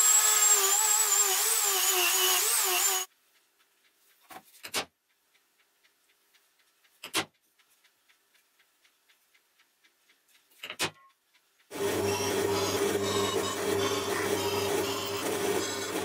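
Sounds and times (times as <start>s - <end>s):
drill press drilling steel: 0.0s - 3.1s, 11.7s - 16.0s.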